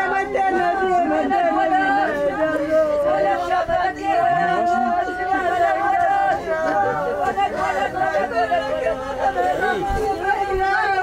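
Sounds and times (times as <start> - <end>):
women wailing mourning cries: 0.0 - 11.0.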